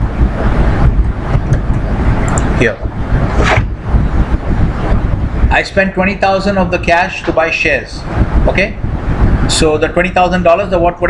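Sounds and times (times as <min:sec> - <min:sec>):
loud low rumbling: 0:00.0 - 0:10.9.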